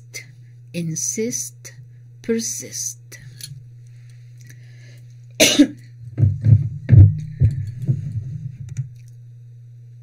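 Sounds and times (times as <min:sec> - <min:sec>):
person coughing: 0:05.4 - 0:05.8
throat-clearing: 0:05.4 - 0:05.8.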